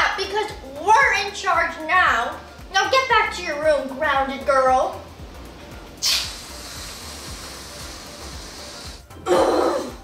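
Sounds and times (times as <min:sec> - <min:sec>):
quiet background music: 0:00.0 - 0:10.0
aerosol can spraying hiss: 0:05.9 - 0:09.1.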